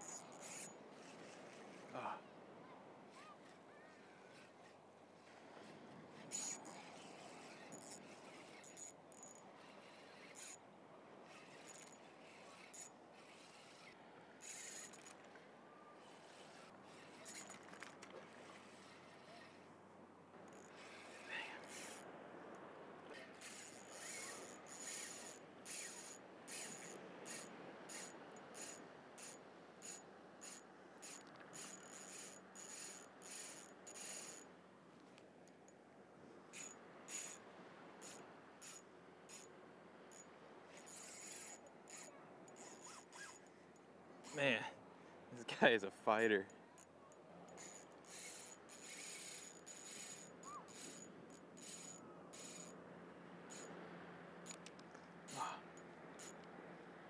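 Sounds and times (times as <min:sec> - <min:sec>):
fishing reel clicking: 0:00.0 - 0:00.8, 0:06.2 - 0:10.6, 0:11.3 - 0:15.2, 0:16.0 - 0:17.9, 0:21.7 - 0:22.0, 0:23.4 - 0:34.5, 0:36.6 - 0:37.4, 0:38.0 - 0:39.5, 0:40.1 - 0:43.4, 0:47.5 - 0:52.7, 0:56.2 - 0:56.5.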